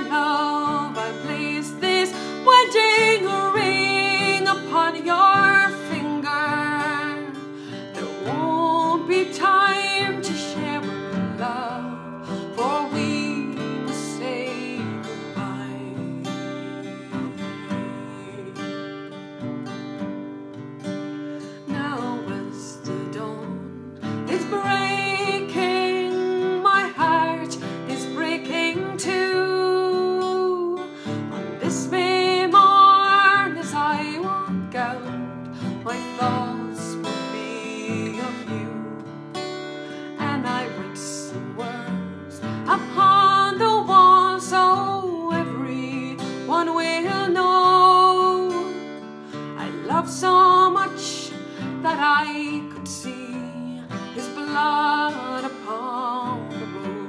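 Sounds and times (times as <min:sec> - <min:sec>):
woman singing a ballad: 0:00.0 - 0:20.3, 0:21.0 - 0:57.0
acoustic guitar strumming: 0:00.0 - 0:57.0.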